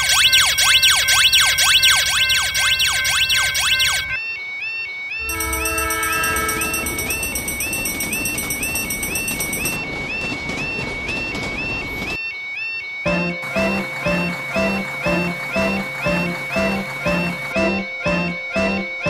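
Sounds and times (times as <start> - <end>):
level-crossing alarm chirping: 0.0 - 19.0
train horn: 5.2 - 7.4
passing train rumble: 5.2 - 12.2, 13.1 - 19.0
rapid sweeping electronic tone: 13.1 - 19.0.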